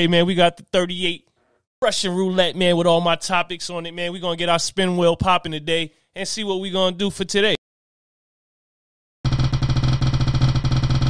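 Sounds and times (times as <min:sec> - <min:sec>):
prize wheel rapid ticking: 0:09.3 - 0:11.0.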